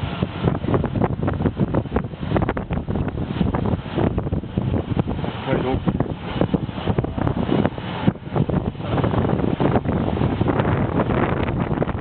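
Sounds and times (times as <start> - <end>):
road and vehicle noise: 0.0 - 12.0
wind buffeting microphone: 0.0 - 12.0.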